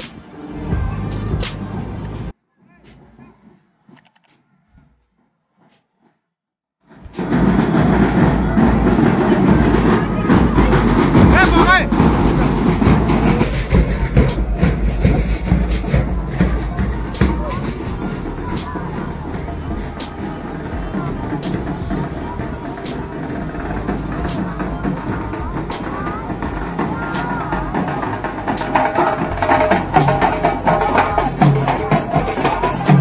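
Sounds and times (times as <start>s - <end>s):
crowd voices: 0.0s - 3.5s, 7.0s - 33.0s
marching side drums: 6.9s - 33.0s.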